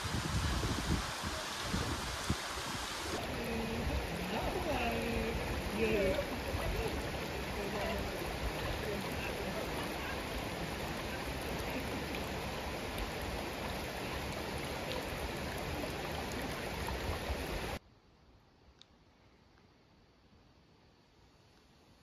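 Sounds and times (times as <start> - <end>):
river rushing over stones: 0.0 - 17.8.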